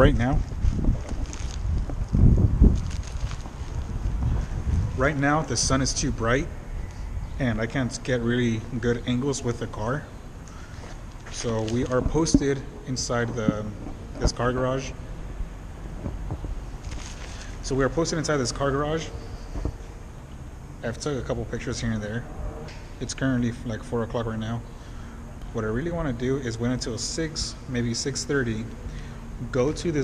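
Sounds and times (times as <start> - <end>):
wind buffeting microphone: 0.0 - 8.0, 11.4 - 17.7
low background rumble: 0.0 - 30.0
faint rustling: 0.4 - 6.0, 10.4 - 14.9, 15.8 - 20.4.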